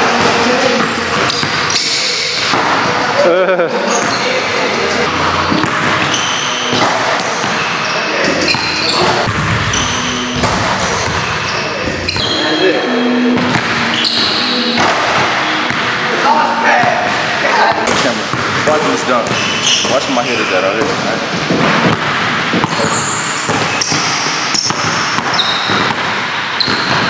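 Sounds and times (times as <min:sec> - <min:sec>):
voices: 0:00.0 - 0:21.3
person laughing: 0:03.2 - 0:04.0
basketballs bouncing on hardwood: 0:08.5 - 0:11.4, 0:17.9 - 0:20.1, 0:20.8 - 0:27.0.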